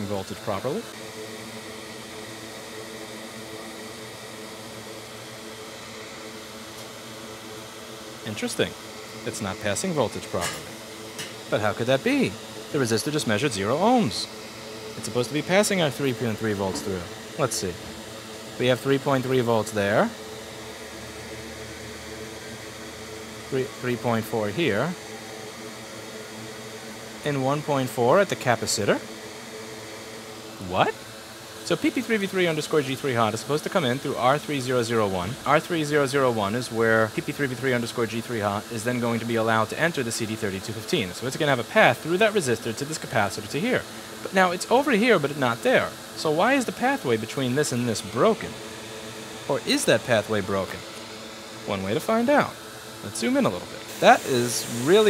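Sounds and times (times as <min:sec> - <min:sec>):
equipment mechanical hum: 0:00.0 - 0:55.0
steady background hiss: 0:00.0 - 0:55.0.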